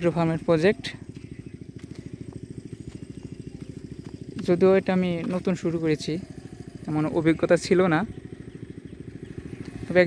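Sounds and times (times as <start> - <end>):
small engine running: 0.0 - 10.0.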